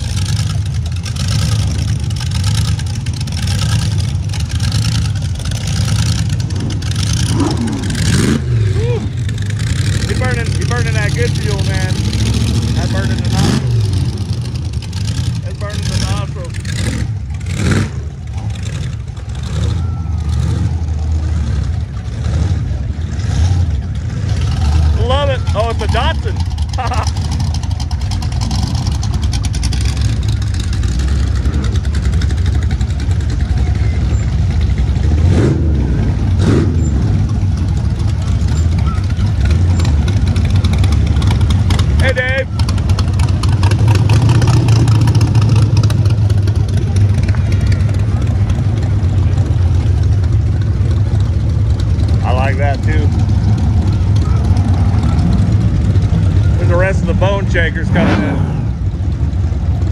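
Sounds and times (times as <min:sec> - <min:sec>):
car engines rumbling past: 0:00.0 - 0:59.9
onlookers' voices: 0:08.7 - 0:14.0, 0:18.1 - 0:27.8, 0:37.2 - 0:59.8.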